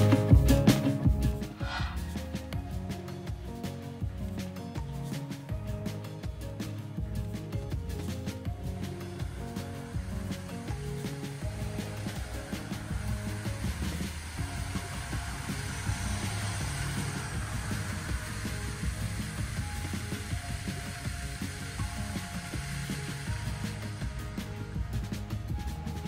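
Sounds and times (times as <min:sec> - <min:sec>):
background music with bass line: 0:00.0 - 0:26.0
rushing hiss: 0:08.8 - 0:24.8.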